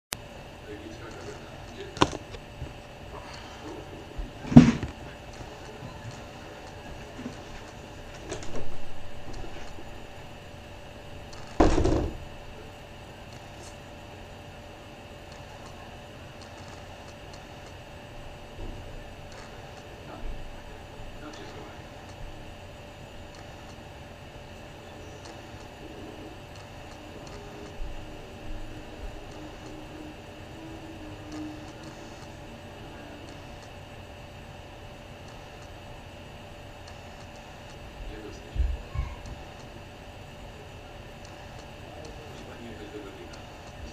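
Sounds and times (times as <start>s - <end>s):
steady background hum: 0.1s - 43.9s
thin constant tone: 0.1s - 43.9s
faint indistinct voices: 0.6s - 8.8s, 13.6s - 34.7s, 36.4s - 43.9s.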